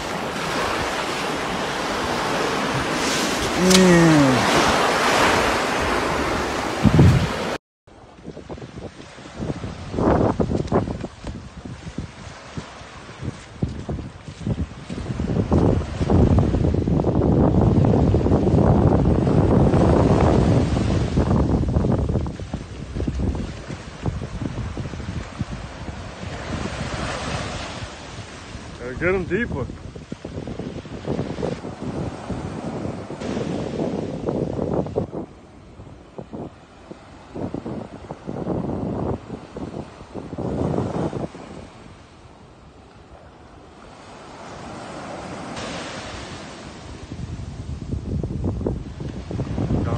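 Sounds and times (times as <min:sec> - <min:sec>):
surf washing on beach: 0:00.0 - 0:49.9
wind buffeting microphone: 0:00.0 - 0:49.9.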